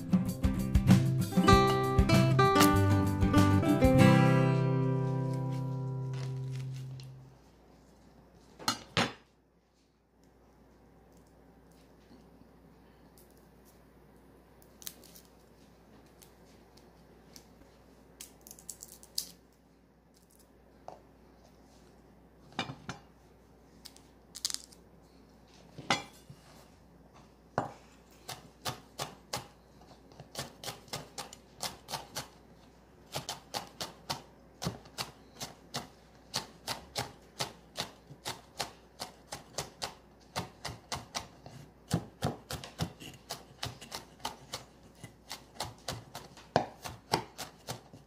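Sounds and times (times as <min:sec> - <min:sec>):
knife chopping on wooden board: 0:35.7 - 0:48.0.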